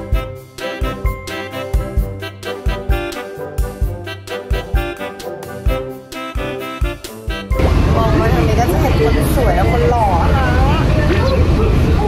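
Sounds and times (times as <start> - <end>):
monorail low rumble: 7.5 - 12.0
woman speaking: 7.6 - 11.4.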